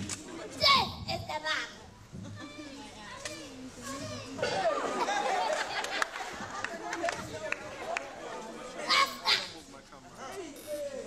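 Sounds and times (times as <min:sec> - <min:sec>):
children talking and calling out: 0:00.2 - 0:05.3, 0:08.8 - 0:09.6.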